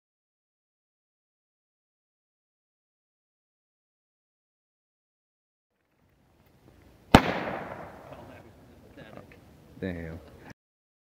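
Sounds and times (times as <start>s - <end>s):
firecracker bang with echo: 7.1s - 8.4s.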